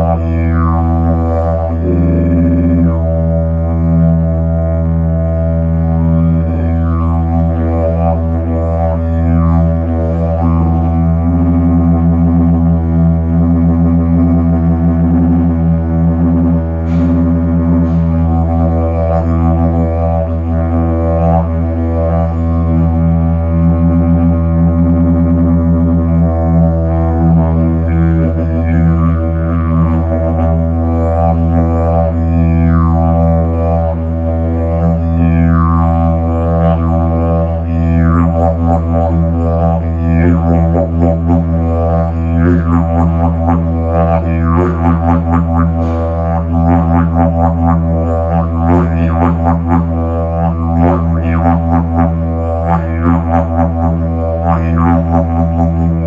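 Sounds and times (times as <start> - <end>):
didgeridoo low drone: 0.0 - 56.0.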